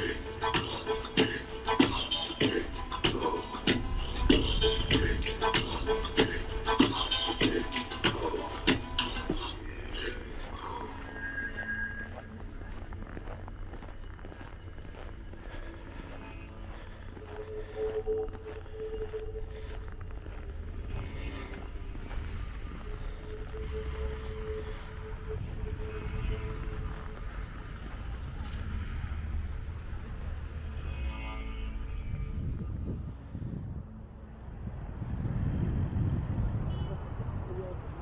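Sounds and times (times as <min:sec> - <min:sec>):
passers-by voices: 0:00.0 - 0:30.8, 0:32.3 - 0:38.0
low rumble of road traffic: 0:00.0 - 0:38.0.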